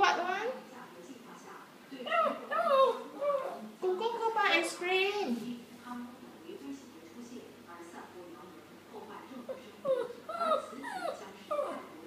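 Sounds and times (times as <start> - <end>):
dog whimpering: 2.1 - 3.6, 9.5 - 12.0.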